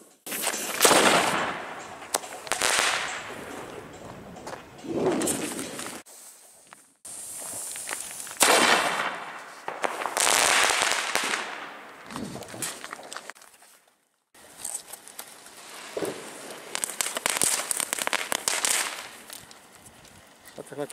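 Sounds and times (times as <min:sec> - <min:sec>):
fireworks bursting and crackling: 0:00.0 - 0:13.4, 0:14.4 - 0:20.9
fireworks sharp bang: 0:00.3 - 0:03.9, 0:08.3 - 0:12.8, 0:15.9 - 0:19.2.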